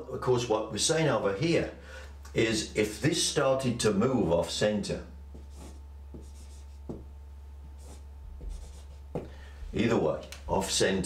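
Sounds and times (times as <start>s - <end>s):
steady low hum: 0.0s - 11.0s
marker strokes on paper: 5.3s - 9.2s.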